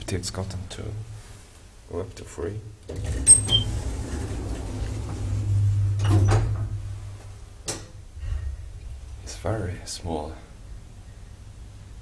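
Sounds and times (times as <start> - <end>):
elevator clunk: 2.9 - 6.9
elevator drive humming: 2.9 - 7.6.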